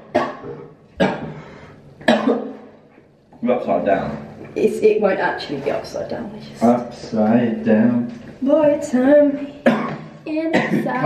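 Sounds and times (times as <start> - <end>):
person coughing: 0.0 - 1.4, 2.0 - 2.7, 9.6 - 11.0.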